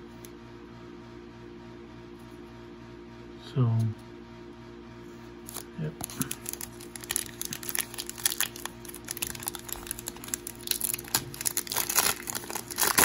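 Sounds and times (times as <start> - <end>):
foil wrapper crinkling: 5.5 - 13.0.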